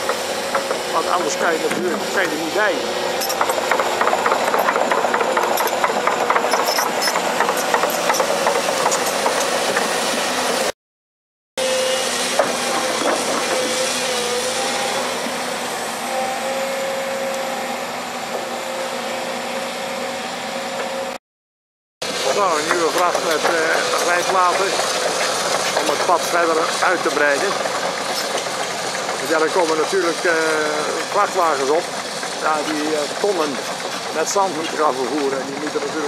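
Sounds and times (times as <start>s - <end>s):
diesel engine running: 0.0s - 10.7s, 11.6s - 21.2s, 22.0s - 36.0s
steel plates rattling and clanking: 3.2s - 10.0s.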